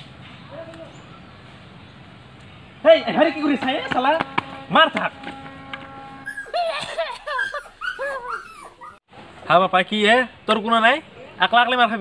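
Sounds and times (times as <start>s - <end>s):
high whimpering yelps: 6.2s - 9.0s.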